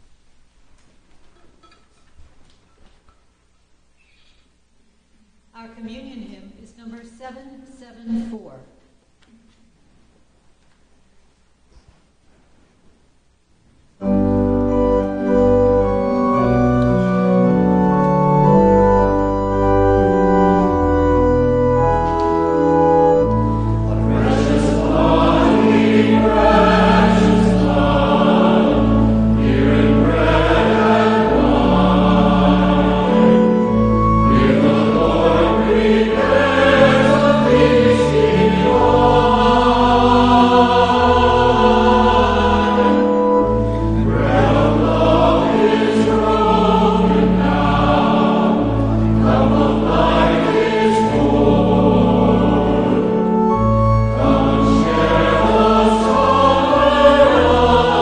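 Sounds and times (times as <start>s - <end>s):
organ accompaniment: 14.0s - 58.0s
voices singing a hymn: 14.0s - 58.0s.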